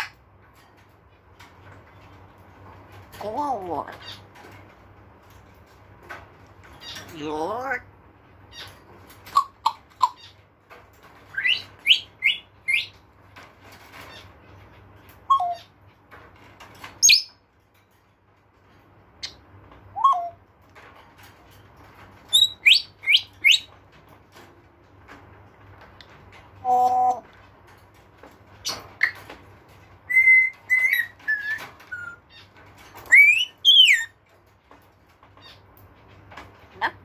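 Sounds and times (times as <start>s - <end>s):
parrot squeak: 11.3s - 12.9s, 15.3s - 15.7s, 19.2s - 20.4s, 22.3s - 23.7s, 30.1s - 34.2s
parrot whistling and chirping: 11.3s - 13.0s, 15.3s - 15.7s, 19.2s - 20.4s, 22.3s - 23.7s, 30.1s - 32.2s, 33.0s - 34.1s.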